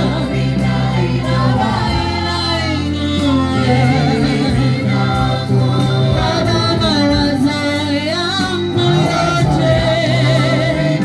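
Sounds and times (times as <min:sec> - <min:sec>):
voices singing gospel: 0:00.0 - 0:11.0.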